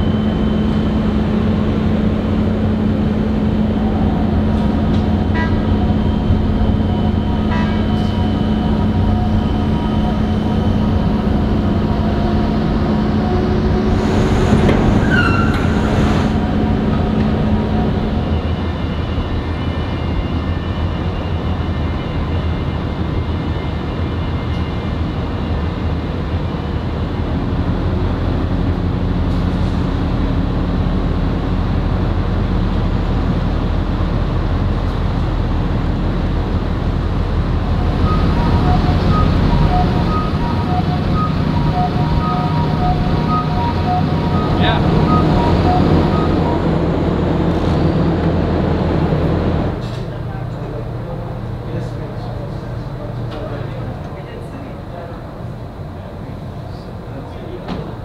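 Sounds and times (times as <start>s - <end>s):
low drone of port machinery: 0.0s - 58.0s
electronic warning beeper: 37.7s - 47.2s.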